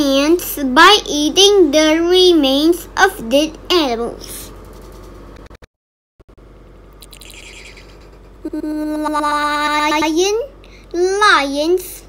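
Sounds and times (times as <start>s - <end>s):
high wavering bird call: 7.0s - 8.1s.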